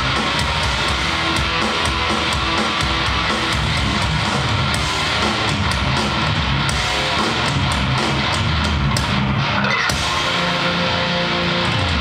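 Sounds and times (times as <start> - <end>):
drum and cymbal hits: 0.0 - 12.0
heavy metal band playing: 0.0 - 12.0.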